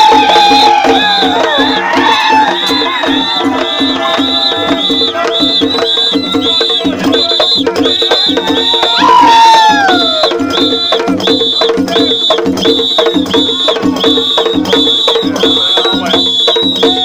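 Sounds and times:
loud call falling in pitch: 0.0s - 17.0s
percussion beat: 0.0s - 17.0s.

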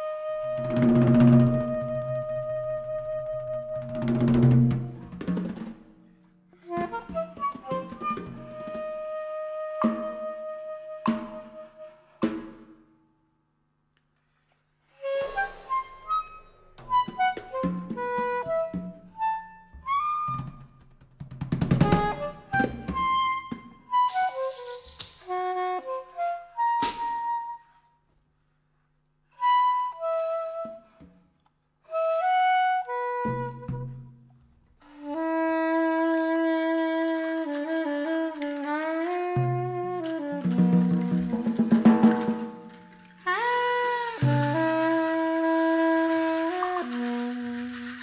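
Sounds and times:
soprano saxophone: 0.0s - 5.2s, 6.5s - 12.3s, 14.9s - 20.8s, 21.8s - 28.0s, 29.3s - 31.2s, 31.8s - 41.6s, 42.8s - 48.0s
drum kit: 3.4s - 6.0s, 6.6s - 10.4s, 11.0s - 12.8s, 15.1s - 25.4s, 26.8s - 27.2s, 37.8s - 48.0s.

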